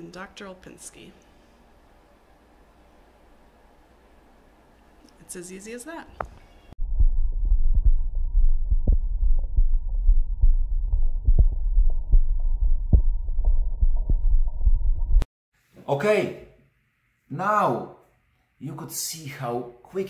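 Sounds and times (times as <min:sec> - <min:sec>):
heartbeat through stethoscope: 0:06.8 - 0:15.3.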